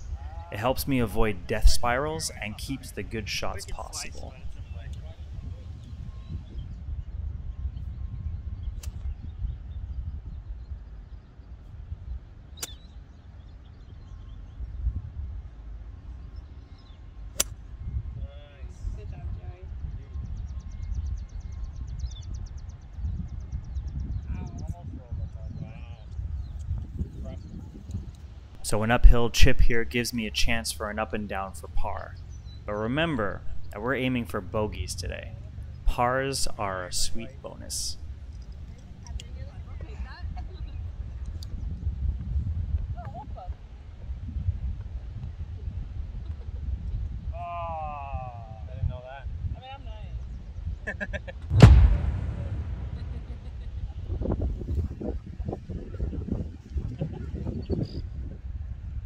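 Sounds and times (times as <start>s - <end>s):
wind rumble on microphone: 0.0s - 30.7s, 34.4s - 59.0s
golf club hitting ball: 17.4s - 17.6s.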